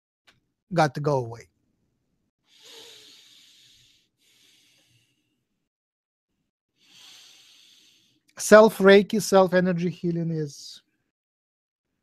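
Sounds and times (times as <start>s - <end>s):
man breathing: 2.4s - 5.6s, 6.8s - 8.3s.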